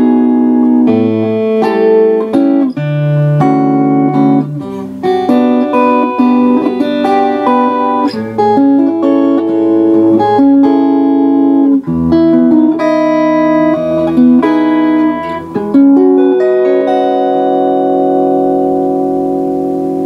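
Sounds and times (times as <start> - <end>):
electric twelve-string guitar: 0.0 - 20.0.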